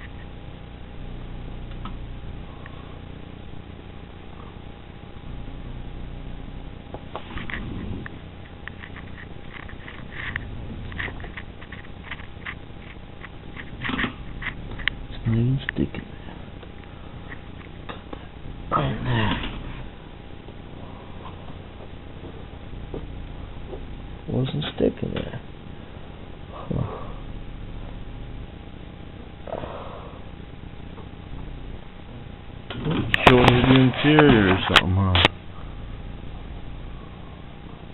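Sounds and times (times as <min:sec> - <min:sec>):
faint steady hum: 0:00.0 - 0:37.9
man talking: 0:15.1 - 0:16.2, 0:24.3 - 0:25.5, 0:33.2 - 0:35.3.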